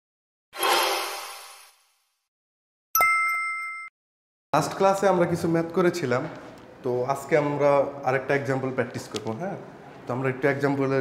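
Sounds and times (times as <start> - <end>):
bright chime ding: 3.0 - 3.9.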